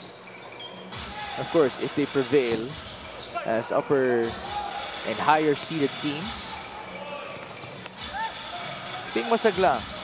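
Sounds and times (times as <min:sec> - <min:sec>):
sneaker squeaks: 0:00.0 - 0:01.6, 0:02.2 - 0:04.7, 0:05.4 - 0:10.0
crowd hubbub: 0:01.0 - 0:10.0.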